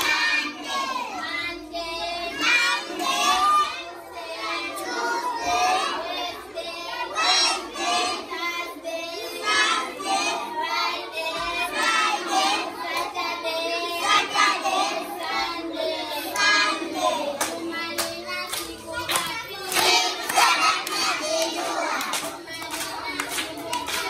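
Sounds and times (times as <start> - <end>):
children singing together: 0.0 - 24.0.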